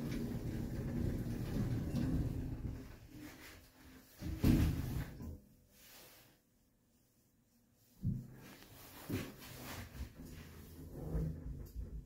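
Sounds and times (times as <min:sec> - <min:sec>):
lift doors closing with low rumble: 0:00.0 - 0:03.0.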